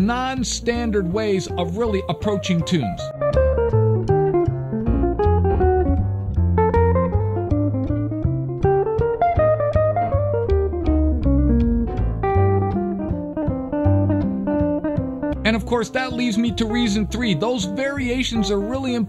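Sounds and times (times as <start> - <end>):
jazz guitar plucked notes: 0.0 - 19.0
walking bass line: 0.0 - 19.0.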